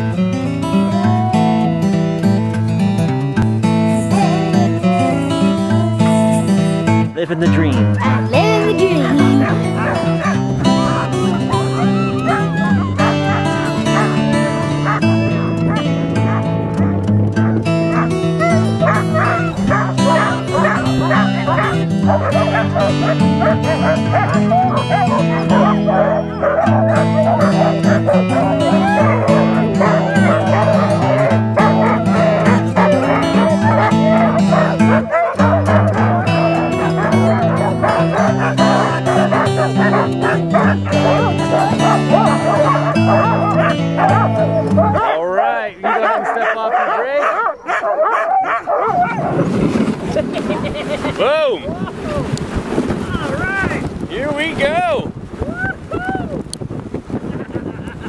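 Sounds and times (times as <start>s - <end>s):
background music with chords: 0.0s - 45.0s
dogs barking and yelping: 0.6s - 2.0s, 3.5s - 7.0s, 7.8s - 49.4s.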